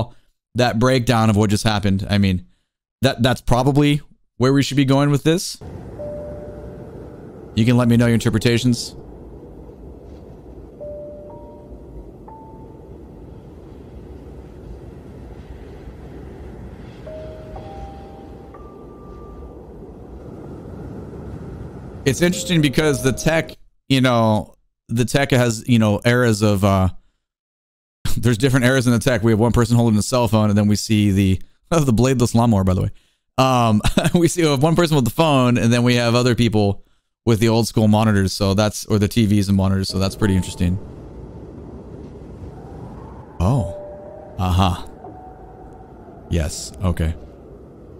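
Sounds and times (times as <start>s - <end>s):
low rumbling drone: 5.6s - 21.2s, 39.9s - 47.9s
faint hum: 5.6s - 23.3s, 39.6s - 47.9s
held high note: 22.1s - 23.5s, 43.4s - 45.8s.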